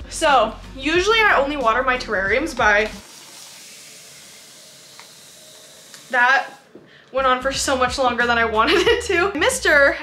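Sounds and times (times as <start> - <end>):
spray bottle mist hissing: 3.0 - 6.8.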